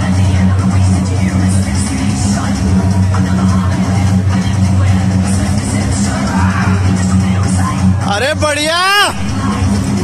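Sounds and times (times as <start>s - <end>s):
background music: 0.0s - 10.0s
person shouting: 8.3s - 9.3s.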